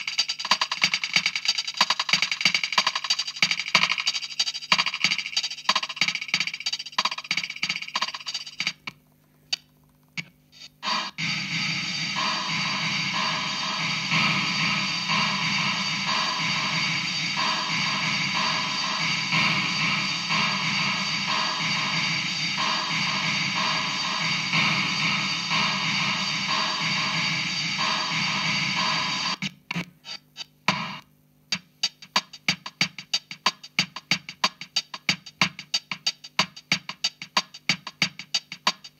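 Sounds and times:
clicking percussion pattern: 0:00.0 - 0:10.3, 0:12.1 - 0:29.4.

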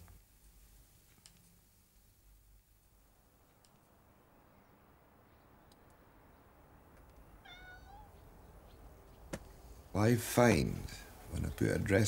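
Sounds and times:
faint background hum: 0:00.0 - 0:12.0
cat meowing: 0:07.4 - 0:08.2.

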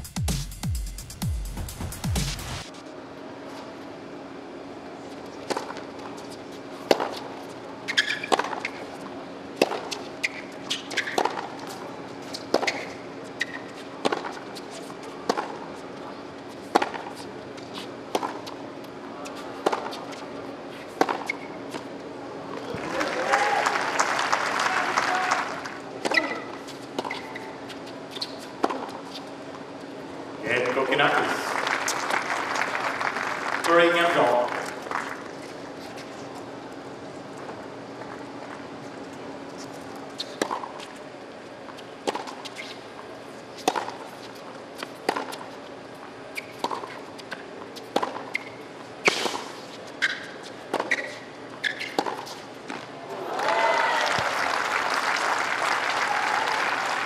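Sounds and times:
tennis balls struck by rackets: 0:06.8 - 0:07.3, 0:09.6 - 0:15.7, 0:16.6 - 0:18.6, 0:19.2 - 0:20.2, 0:20.9 - 0:21.9, 0:28.2 - 0:29.2, 0:40.2 - 0:40.8, 0:42.0 - 0:42.5, 0:43.6 - 0:45.6, 0:46.3 - 0:52.9
applause: 0:22.7 - 0:25.8, 0:31.2 - 0:35.2, 0:53.3 - 0:57.0.

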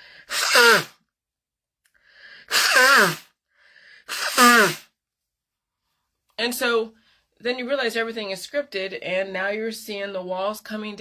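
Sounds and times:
woman sneezing: 0:00.3 - 0:01.0, 0:02.5 - 0:03.3, 0:04.1 - 0:04.9.

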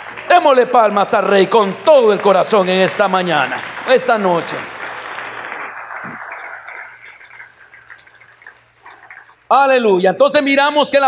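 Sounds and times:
congregation clapping: 0:00.0 - 0:10.0.

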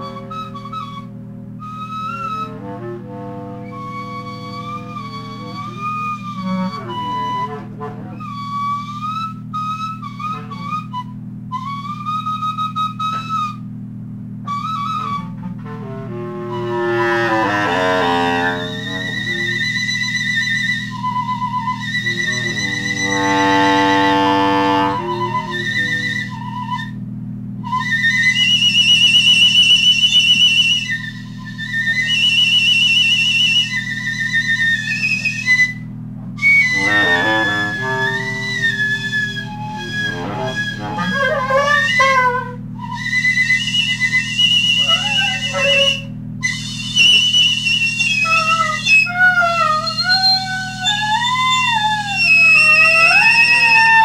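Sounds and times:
steady low drone: 0:00.0 - 0:08.7, 0:15.3 - 0:20.0, 0:21.0 - 0:27.6, 0:35.9 - 0:42.9
free jazz wind instrument: 0:00.0 - 0:13.7, 0:14.4 - 0:54.0.

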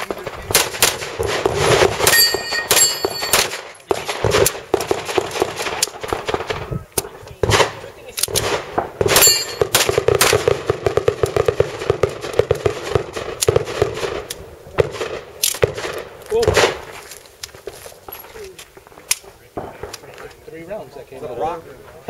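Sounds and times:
steel target ringing: 0:02.1 - 0:03.5, 0:09.2 - 0:09.7.

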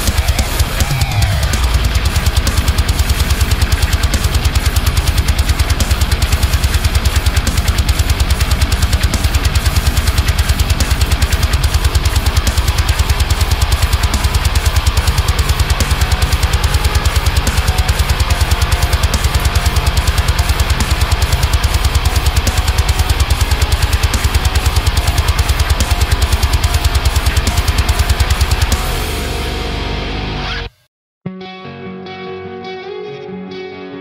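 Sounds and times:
chugging heavy metal guitar: 0:00.0 - 0:30.8
drums: 0:00.0 - 0:30.8.

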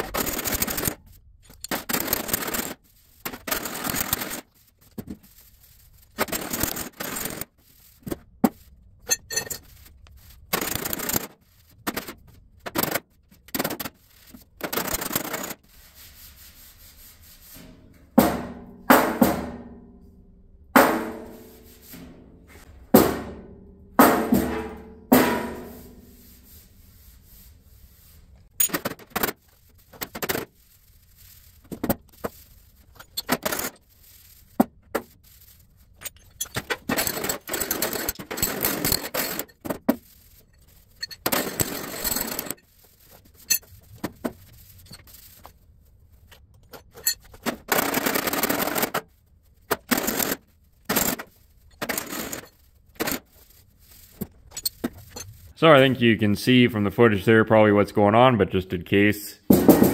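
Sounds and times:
rubbing on metal: 0:00.0 - 0:18.2, 0:25.4 - 0:55.6
hammer striking sheet metal: 0:18.2 - 0:20.1, 0:20.8 - 0:22.3, 0:22.9 - 0:26.5.

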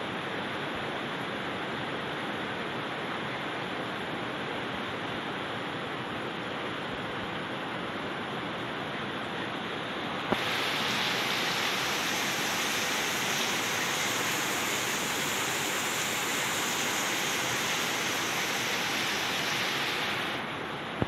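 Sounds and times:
rain falling on plants: 0:10.3 - 0:20.4.

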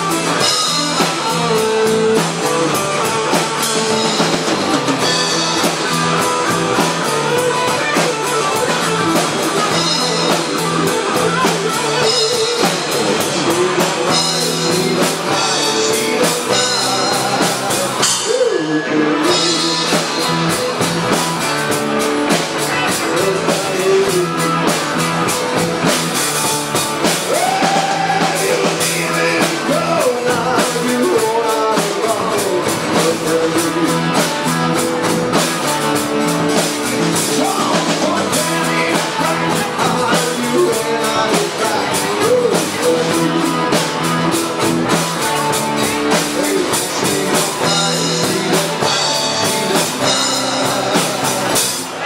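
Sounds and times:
bass guitar: 0:00.0 - 0:52.0
drum kit with cymbals: 0:00.0 - 0:52.0
electric guitar: 0:00.0 - 0:52.0
man singing: 0:00.0 - 0:52.0.

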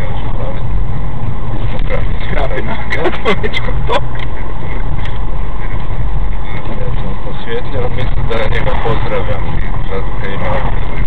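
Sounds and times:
car engine rumble: 0:00.0 - 0:11.0
tyres on road: 0:00.0 - 0:11.0.

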